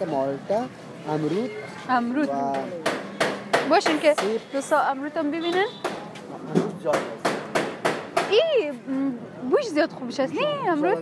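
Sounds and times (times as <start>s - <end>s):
sharp knocks: 2.4s - 4.5s, 5.5s - 8.4s.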